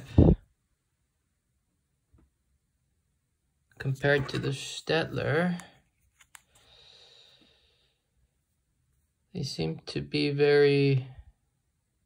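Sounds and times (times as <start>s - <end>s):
faint breath: 6.4s - 8.2s.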